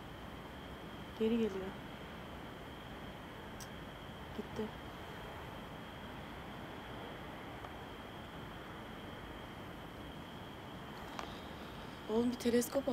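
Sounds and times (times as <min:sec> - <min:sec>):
faint background hiss: 0:00.0 - 0:12.9
high-pitched whine: 0:00.0 - 0:12.9.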